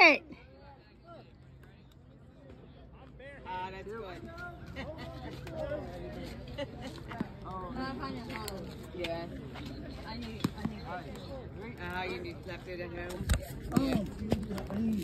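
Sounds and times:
people talking and calling out: 0.0 - 15.0.

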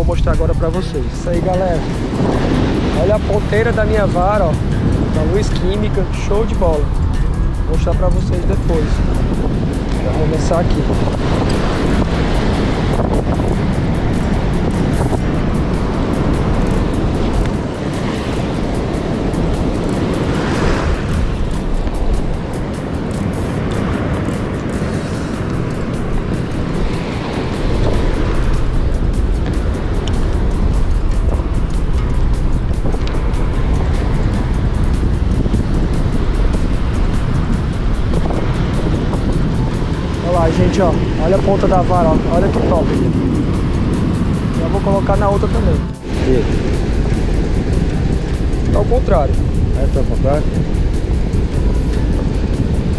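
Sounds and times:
surf washing onto beach: 0.0 - 52.9
wind rumbling on microphone: 0.0 - 52.9.

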